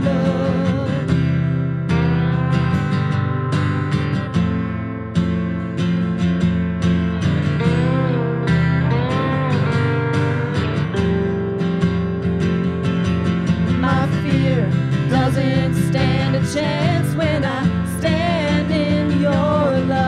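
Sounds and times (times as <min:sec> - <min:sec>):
acoustic guitar strumming: 0:00.0 - 0:20.0
electric guitar bending notes: 0:00.0 - 0:20.0.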